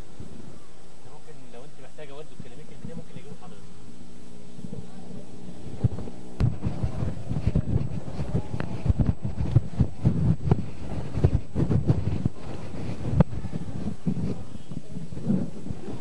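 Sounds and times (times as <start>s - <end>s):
steady low hum: 0.0s - 16.0s
wind buffeting microphone: 0.0s - 16.0s.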